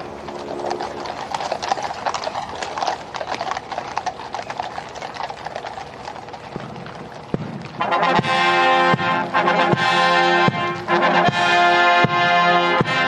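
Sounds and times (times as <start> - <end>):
horse hooves clip-clopping on tarmac: 0.0 - 13.0.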